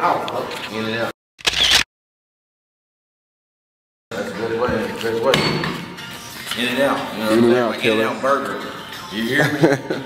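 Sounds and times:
camera shutter sound effect: 1.4s - 1.9s.

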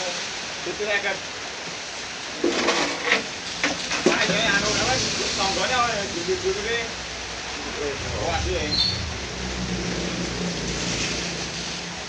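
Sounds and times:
rain falling: 0.0s - 12.0s
men talking: 4.0s - 7.0s.

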